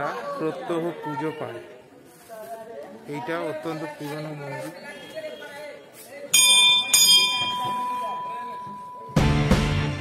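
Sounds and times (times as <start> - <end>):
temple bell ringing: 6.3 - 9.5.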